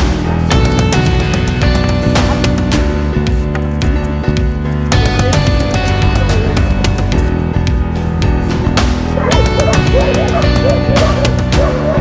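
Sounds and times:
rock music: 0.0s - 12.0s
puppy yipping: 9.2s - 12.0s.

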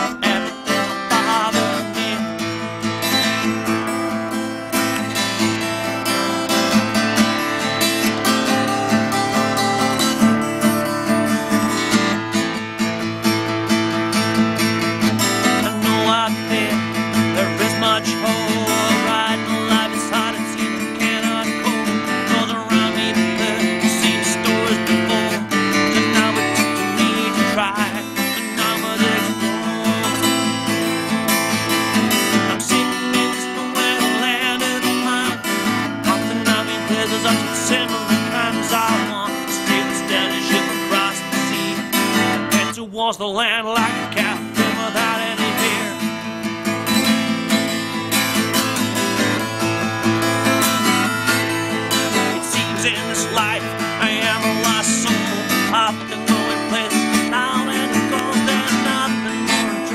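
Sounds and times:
acoustic guitar strumming: 0.0s - 59.9s.

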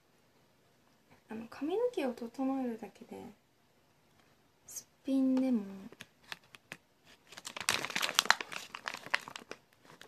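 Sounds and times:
crinkling and crackling: 5.3s - 10.0s.

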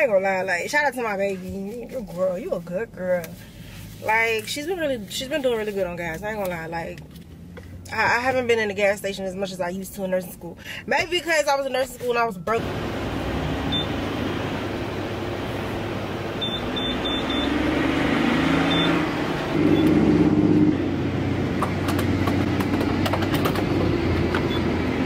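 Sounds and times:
rumble of engines and traffic: 0.0s - 25.0s
keypad beeping: 16.4s - 17.6s, 18.7s - 19.0s.

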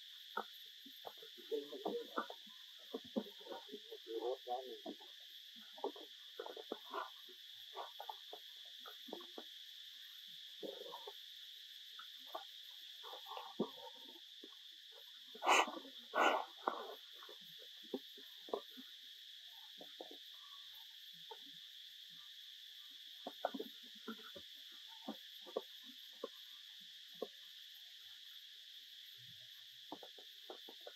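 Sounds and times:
high-pitched insect drone: 0.0s - 30.9s.

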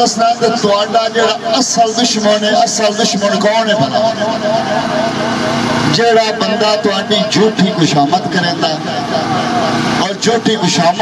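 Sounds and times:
man speaking over loudspeaker: 0.0s - 5.1s, 5.8s - 11.0s
steady hum: 0.0s - 11.0s.

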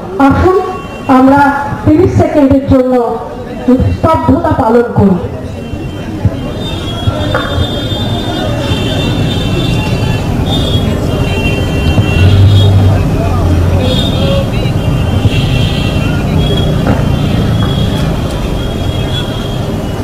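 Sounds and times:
motorcycles riding past: 9.8s - 18.8s.

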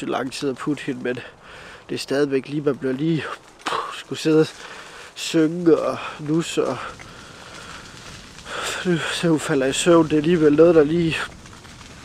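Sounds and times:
man talking: 0.0s - 4.6s, 5.2s - 7.0s, 8.5s - 11.3s
faint background hiss: 0.0s - 11.4s.

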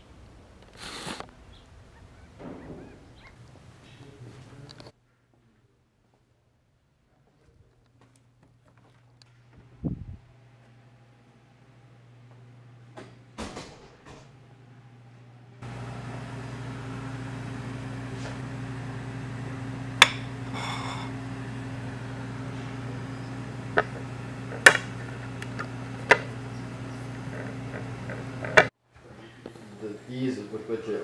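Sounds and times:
steady low hum: 1.2s - 31.0s.

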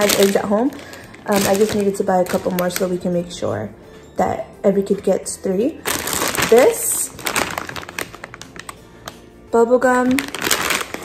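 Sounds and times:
plastic wrappers crinkling: 0.0s - 3.4s, 5.8s - 9.3s, 9.9s - 11.0s.

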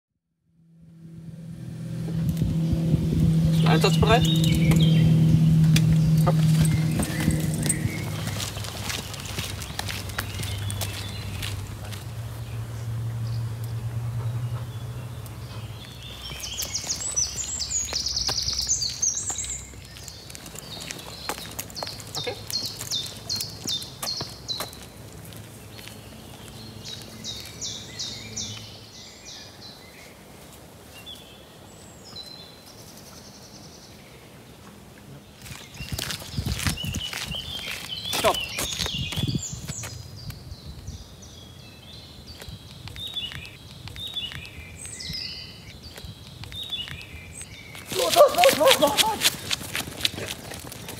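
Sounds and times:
footsteps on paved path: 2.0s - 28.8s, 35.2s - 50.9s
songbirds singing: 2.0s - 50.9s.

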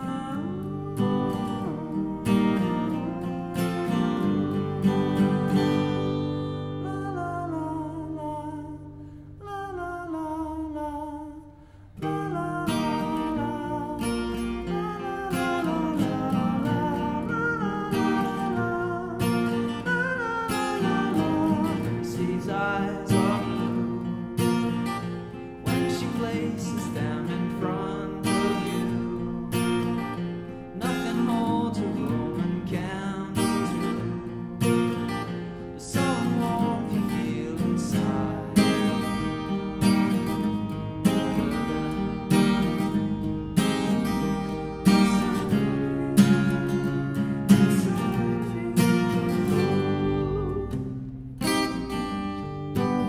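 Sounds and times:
person singing wordless melody: 0.0s - 50.9s
acoustic guitar strumming: 0.0s - 53.0s.

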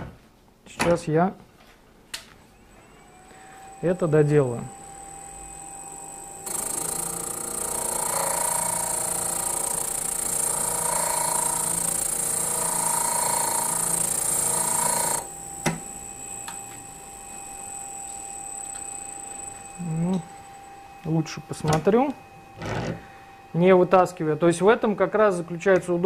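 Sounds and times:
machine whine: 2.4s - 26.0s
metal grinding on abrasive wheel: 6.5s - 15.3s.

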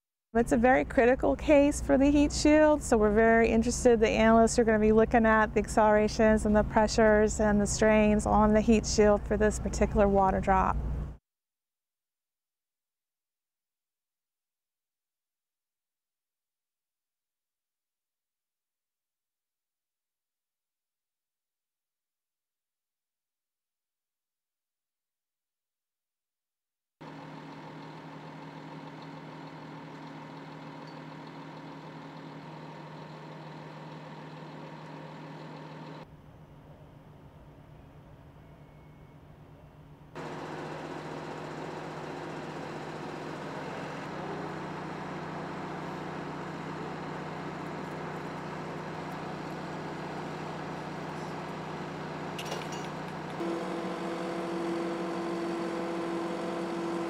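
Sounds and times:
engine idling hum: 27.0s - 36.0s, 40.2s - 57.0s.

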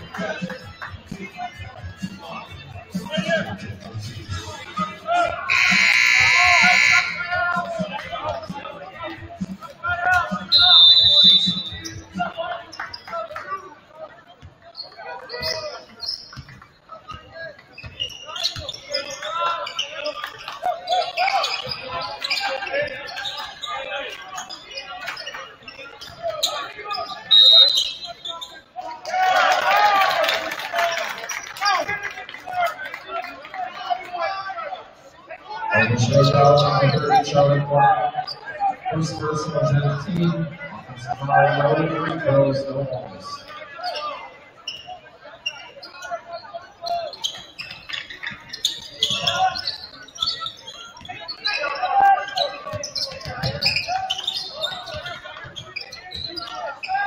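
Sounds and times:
crowd voices: 0.0s - 57.0s
scoreboard buzzer: 5.5s - 7.2s
referee's whistle: 5.5s - 7.3s, 10.3s - 12.3s, 26.4s - 28.6s.

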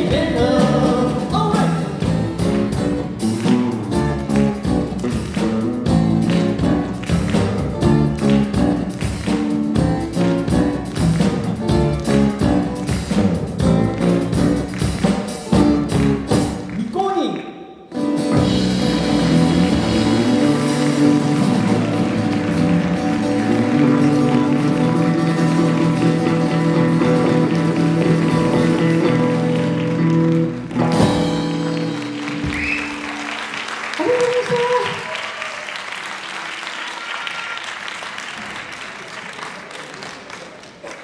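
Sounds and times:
audience applause: 4.3s - 9.6s, 13.9s - 16.9s, 19.0s - 41.0s.

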